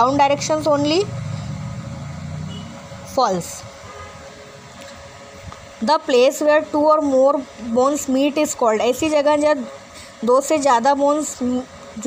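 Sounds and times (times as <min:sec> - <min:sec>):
passing motor vehicle rumble: 0:00.0 - 0:04.3.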